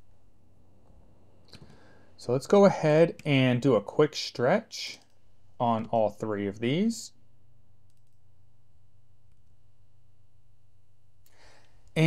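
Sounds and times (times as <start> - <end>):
low steady hum: 0.0 - 12.0
computer mouse or key clicks: 7.9 - 8.2.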